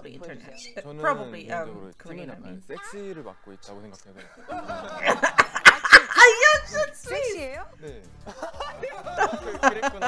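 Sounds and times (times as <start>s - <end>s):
woman laughing: 4.6s - 7.5s, 8.4s - 10.0s.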